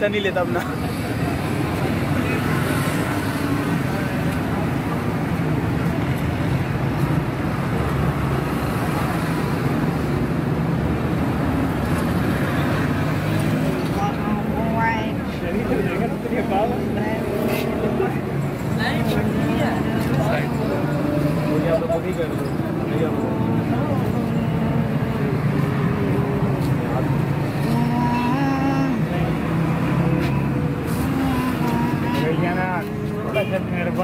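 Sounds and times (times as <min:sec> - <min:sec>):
indistinct voices talking: 0:00.0 - 0:34.0.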